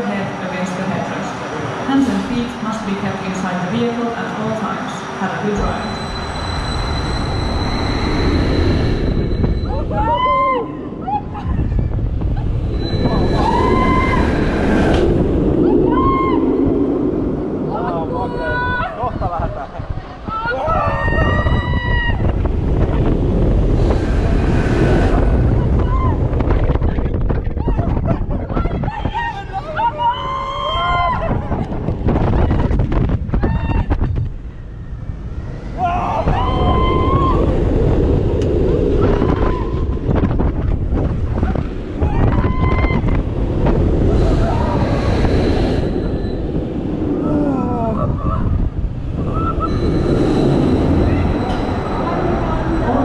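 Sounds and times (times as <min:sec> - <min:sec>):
roller coaster train rumbling: 0:00.0 - 0:53.0
wind rushing over microphone: 0:00.0 - 0:53.0
riders screaming: 0:12.8 - 0:14.6, 0:35.7 - 0:37.7.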